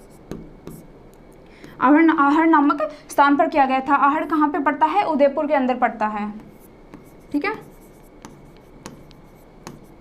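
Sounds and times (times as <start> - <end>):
marker pen scratching on board: 0.0 - 0.9, 6.4 - 10.0
pen tapping on board: 0.3 - 0.8, 6.4 - 9.9.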